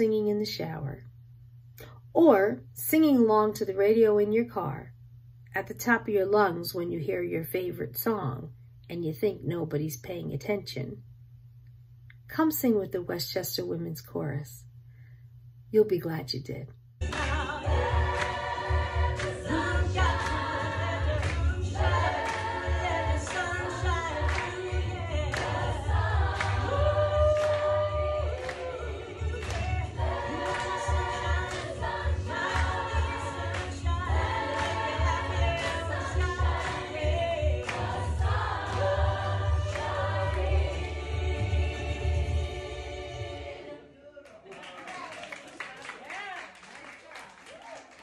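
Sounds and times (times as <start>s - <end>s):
women's chorus singing: 17.0s - 44.0s.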